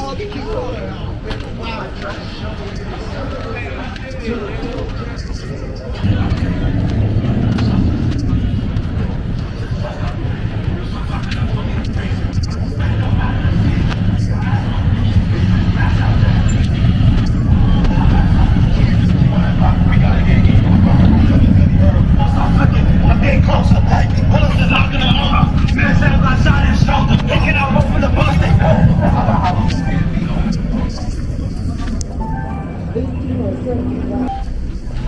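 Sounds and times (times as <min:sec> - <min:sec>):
faint people talking: 0:00.0 - 0:35.0
vehicle engine running: 0:06.0 - 0:32.2
loud low rumble: 0:06.0 - 0:35.0.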